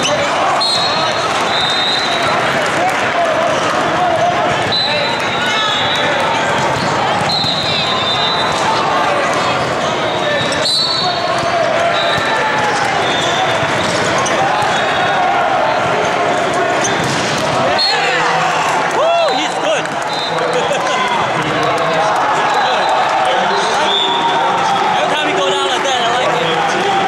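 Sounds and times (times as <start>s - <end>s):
volleyballs struck and bouncing: 0.0s - 18.9s
many overlapping voices: 0.0s - 27.0s.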